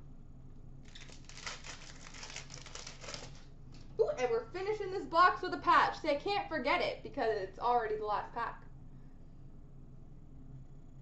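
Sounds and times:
wrapper tearing and crinkling: 0:00.8 - 0:03.5.

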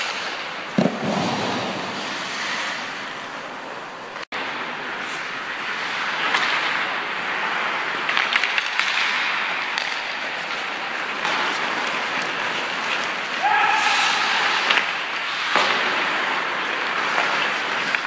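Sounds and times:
skates scraping on ice: 0:00.0 - 0:18.0
sticks clacking on ice and puck: 0:00.0 - 0:18.0
person shouting: 0:13.4 - 0:14.7.

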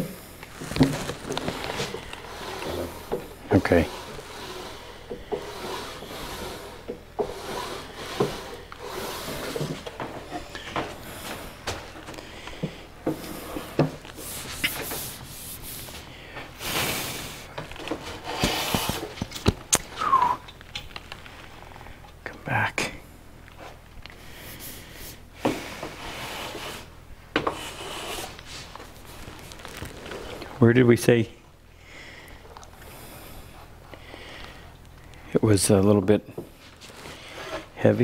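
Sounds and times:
wooden drawer rubbing: 0:00.4 - 0:12.0, 0:16.7 - 0:19.4.

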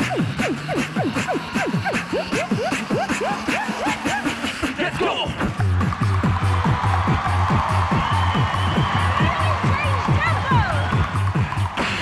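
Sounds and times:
group vocal beatboxing: 0:00.0 - 0:06.6.

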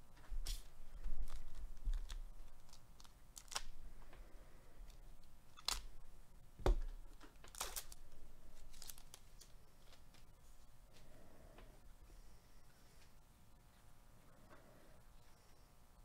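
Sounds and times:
foil pack crinkling and ripping: 0:00.4 - 0:03.8, 0:05.5 - 0:05.9, 0:07.4 - 0:10.3.

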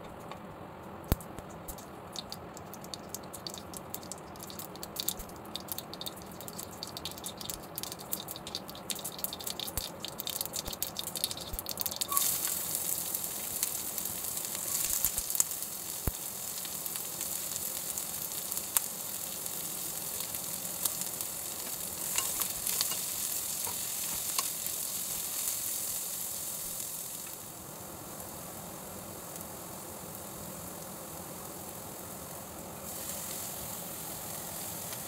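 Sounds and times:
stirring ticks: 0:01.1 - 0:12.6, 0:20.8 - 0:24.8
onion sizzling in hot oil: 0:01.1 - 0:35.0.

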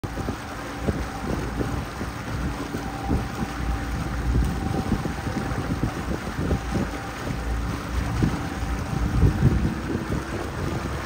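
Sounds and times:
boat engine running: 0:00.0 - 0:11.0
wind buffeting microphone: 0:00.0 - 0:11.0.

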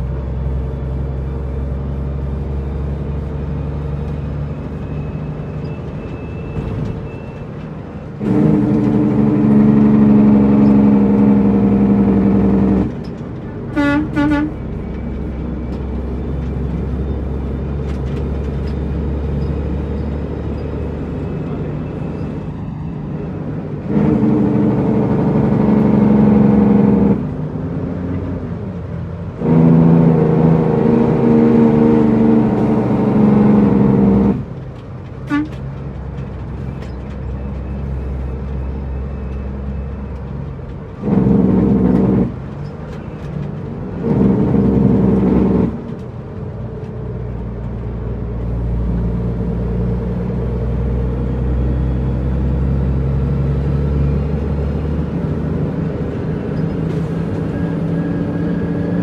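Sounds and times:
truck diesel engine: 0:00.0 - 0:59.0
horn toots: 0:13.7 - 0:14.8, 0:35.3 - 0:35.6.

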